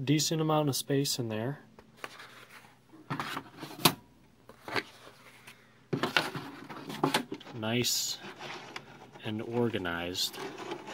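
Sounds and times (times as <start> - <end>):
file folders scraping on metal rails: 10.2 - 10.9.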